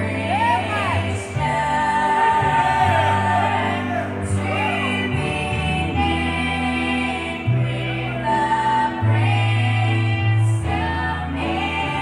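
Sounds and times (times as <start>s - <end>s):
piano: 0.0s - 12.0s
women singing gospel in harmony: 0.0s - 12.0s.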